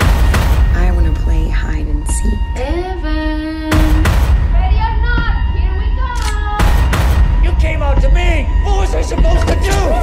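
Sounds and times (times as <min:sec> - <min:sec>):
sharp hits: 0:00.0 - 0:01.3.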